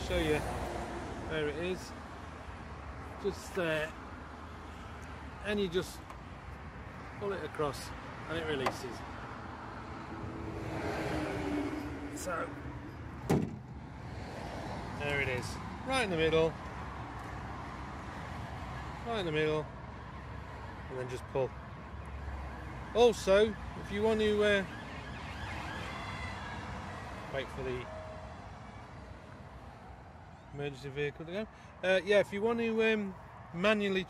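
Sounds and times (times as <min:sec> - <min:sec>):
faint emergency vehicle siren wailing: 0:22.0 - 0:30.6.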